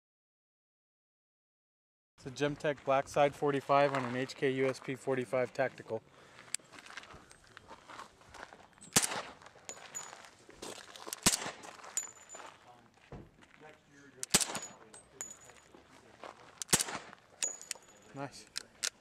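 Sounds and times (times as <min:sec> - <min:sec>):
suppressed pistol shots: 0:08.9 - 0:09.4, 0:11.1 - 0:12.2, 0:14.2 - 0:15.3, 0:16.6 - 0:17.9.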